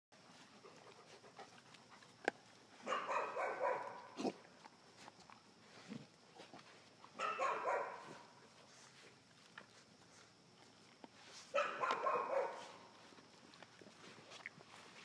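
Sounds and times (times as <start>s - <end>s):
puppies barking and yapping: 0.3s - 4.6s, 6.4s - 15.0s.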